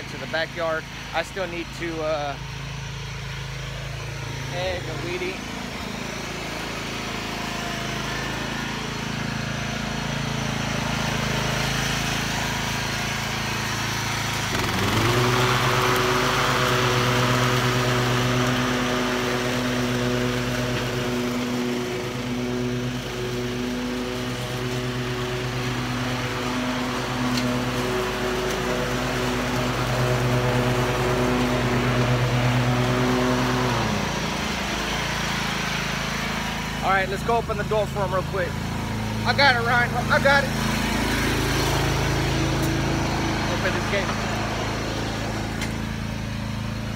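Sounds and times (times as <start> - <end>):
riding mower engine running: 0.0 - 46.9.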